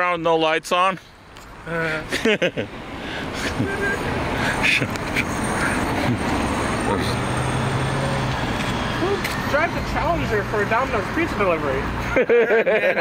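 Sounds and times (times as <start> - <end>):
car driving past: 1.7 - 12.0.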